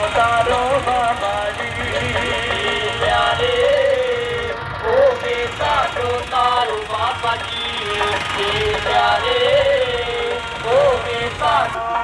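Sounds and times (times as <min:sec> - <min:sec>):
devotional music over loudspeaker: 0:00.0 - 0:12.0
diesel tractor engine running: 0:00.0 - 0:12.0.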